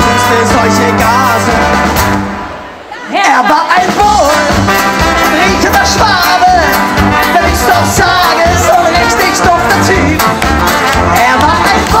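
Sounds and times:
ska band playing: 0.0 - 12.0.

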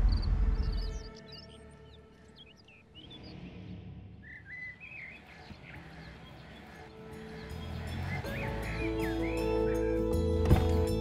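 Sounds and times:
low background music: 0.0 - 3.3, 5.7 - 11.0
songbirds chirping: 0.0 - 11.0.

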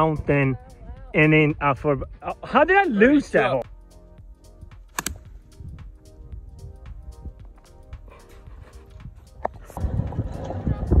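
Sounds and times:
background music: 0.0 - 11.0
golf club striking ball: 4.9 - 5.4.

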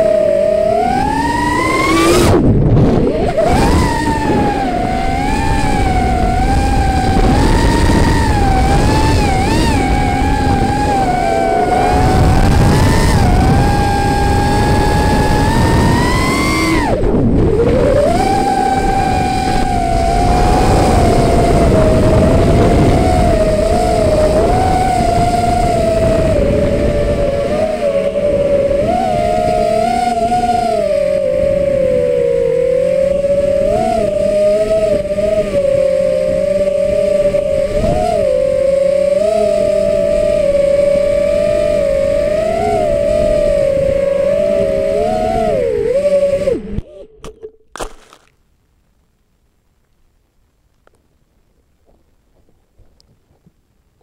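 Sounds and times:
wind rushing over microphone: 0.0 - 47.6
drone motors whining: 0.0 - 48.3.

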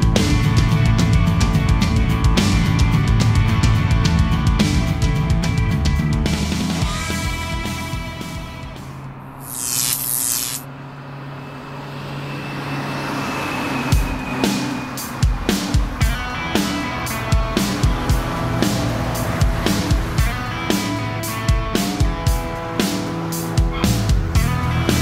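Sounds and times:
rock drums and guitar: 0.0 - 8.9, 14.0 - 25.0
short hiss: 9.4 - 10.6.

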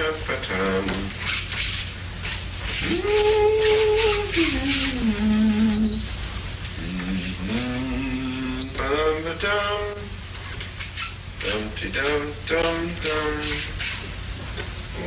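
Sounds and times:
rhythmic scratchy strokes: 0.0 - 15.0
man singing long wordless notes: 2.8 - 6.1, 6.8 - 10.2, 11.4 - 13.8.

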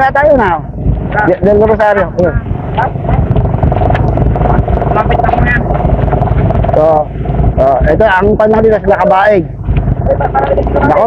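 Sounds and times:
steady tone: 0.0 - 11.0
vehicle engine running: 0.0 - 11.0
wind rumble on microphone: 0.0 - 11.0.

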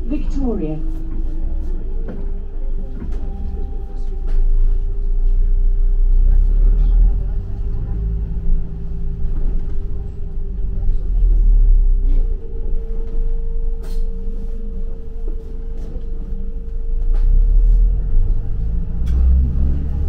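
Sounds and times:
bus engine and road rumble: 0.0 - 20.0
constant hum: 0.0 - 20.0.

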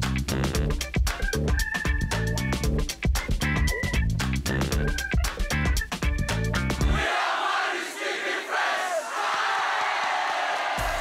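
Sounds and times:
funky jingle with bass: 0.0 - 7.0
crowd shouting and cheering: 6.8 - 11.0.

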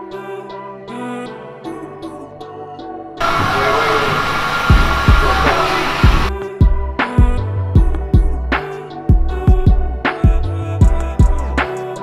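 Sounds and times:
heat gun blowing: 3.2 - 6.3
hip hop beat kick drum: 4.7 - 11.6.

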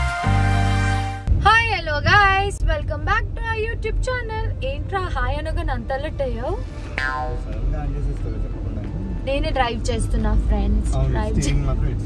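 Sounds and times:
low rumble inside car: 1.3 - 12.0
woman talking: 1.4 - 6.6
pitched sound effect: 6.8 - 7.5.

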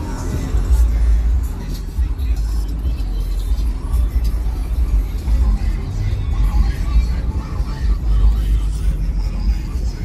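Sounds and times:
deep bass from car music: 0.0 - 10.0
voices: 0.0 - 10.0.

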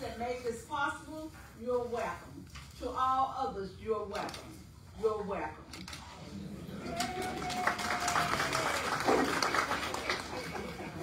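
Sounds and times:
audience applauding: 6.8 - 11.0.

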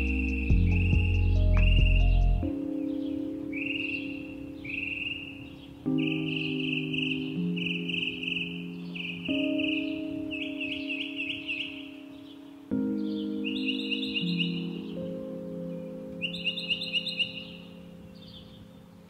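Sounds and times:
bird chirps and trills: 0.0 - 19.0
mellow keyboard chords: 0.0 - 19.0.

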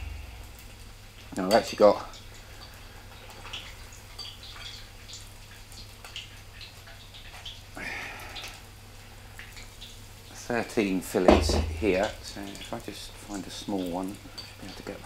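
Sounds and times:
fish deep-frying in oil: 0.0 - 15.0.

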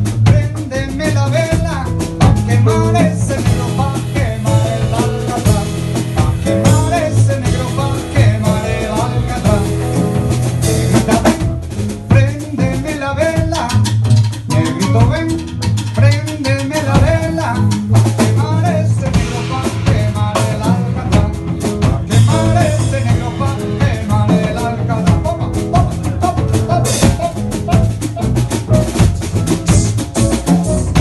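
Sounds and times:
jazz band playing: 0.0 - 31.0
strong bass line: 0.0 - 31.0.

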